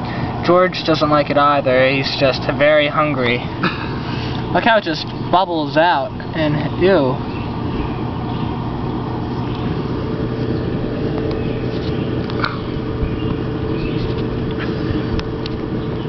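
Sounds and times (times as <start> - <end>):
low mechanical hum: 0.0 - 16.0
rumbling background: 0.0 - 16.0.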